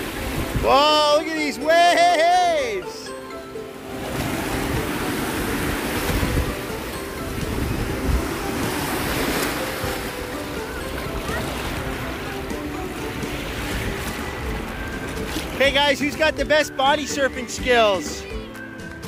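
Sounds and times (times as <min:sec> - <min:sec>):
wind on microphone: 0:00.0 - 0:00.7, 0:04.0 - 0:15.6
small waves breaking in shallow water: 0:00.0 - 0:18.2.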